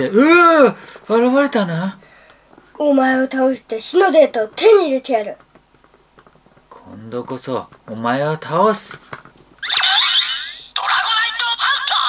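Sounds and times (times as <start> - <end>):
warbling falling electronic tones: 9.6 - 10.7.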